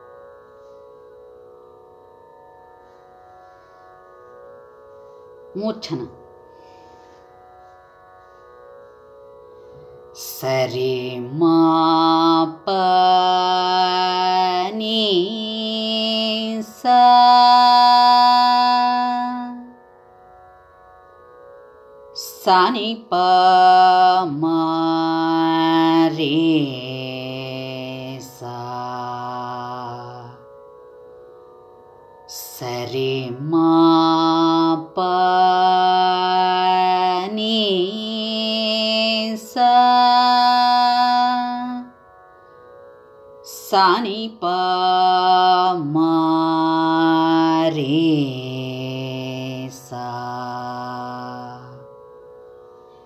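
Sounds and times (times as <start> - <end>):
person singing long notes: 5.5 - 7.2, 9.7 - 19.7, 22.2 - 30.4, 32.3 - 41.9, 43.5 - 51.8.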